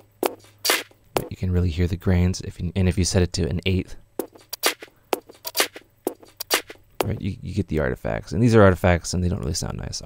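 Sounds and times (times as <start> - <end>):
chopped percussion loop: 0.0 - 1.3, 4.2 - 7.2.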